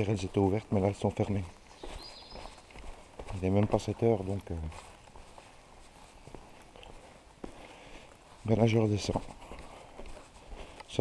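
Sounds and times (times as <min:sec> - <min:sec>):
footsteps on stone: 0:00.0 - 0:11.0.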